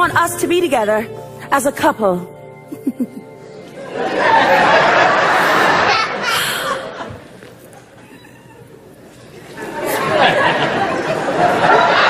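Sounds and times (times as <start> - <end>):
audience murmuring and chattering: 2.3 - 12.0.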